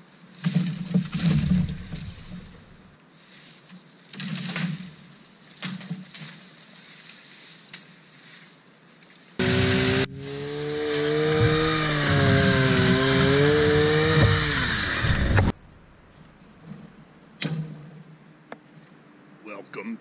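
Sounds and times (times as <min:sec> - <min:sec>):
chainsaw cutting bamboo: 0:09.4 - 0:15.6.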